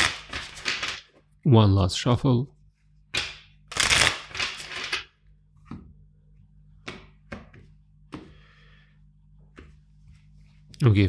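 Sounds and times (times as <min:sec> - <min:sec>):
cards being shuffled: 0:00.0 - 0:01.1, 0:03.2 - 0:05.9
cards tapping on wooden table: 0:06.8 - 0:08.4.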